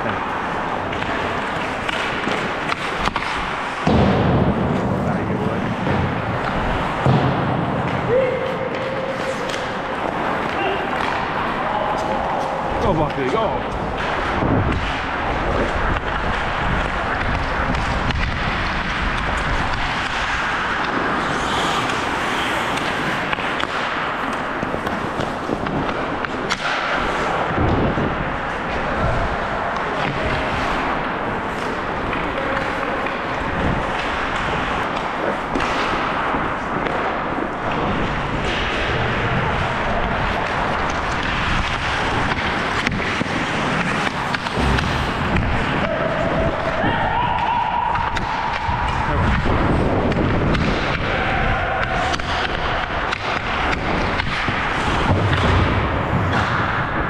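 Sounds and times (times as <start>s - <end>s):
continuous rush of noise: 0.0s - 57.0s
knocks of sticks and puck: 0.0s - 57.0s
skates scraping on ice: 0.0s - 57.0s.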